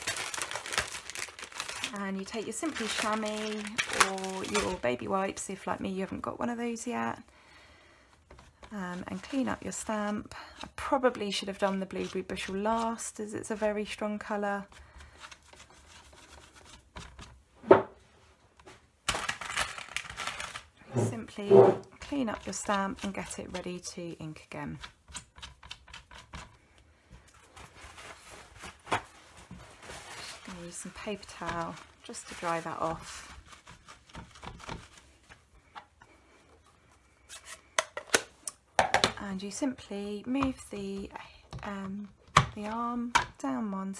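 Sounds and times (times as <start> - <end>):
paper towel rubbing: 27.5 - 35.5.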